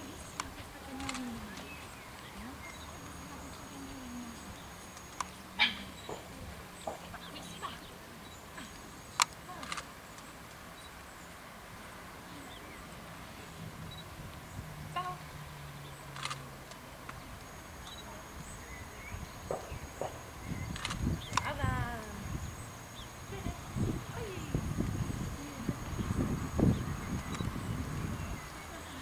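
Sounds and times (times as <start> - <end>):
faint voices: 0.0 - 10.4, 12.1 - 29.0.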